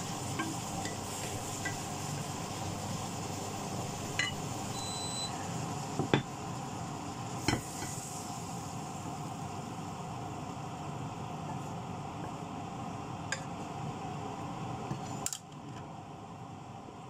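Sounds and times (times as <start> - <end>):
food sizzling in a pan: 0.0 - 15.2.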